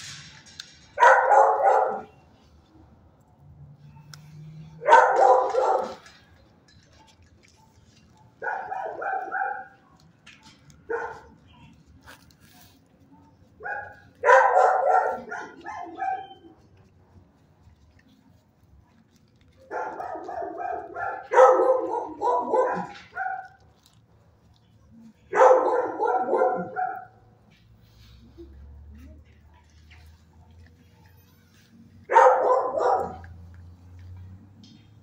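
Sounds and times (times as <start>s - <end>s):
dogs barking: 0.9s - 2.2s, 3.9s - 6.3s, 7.4s - 12.2s, 13.6s - 16.9s, 18.9s - 24.0s, 25.2s - 27.4s, 32.0s - 35.0s.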